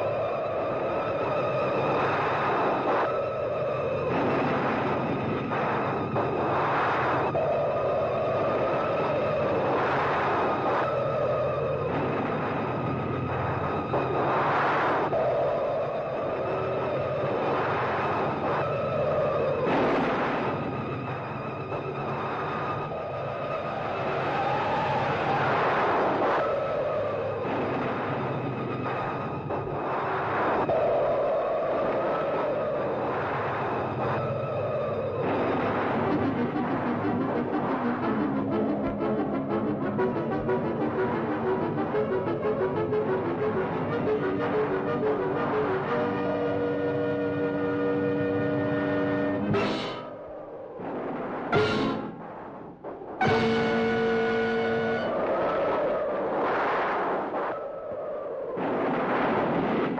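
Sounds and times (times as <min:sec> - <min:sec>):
loud rushing roar: 0:00.0 - 0:56.2
dense rumbling noise: 0:00.0 - 0:59.9
sustained film music notes: 0:36.2 - 0:50.1, 0:51.6 - 0:52.2, 0:53.2 - 0:55.2.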